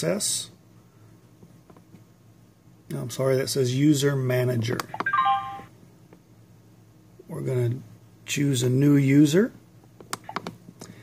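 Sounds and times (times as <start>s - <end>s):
descending electronic chime: 5.0s - 5.7s.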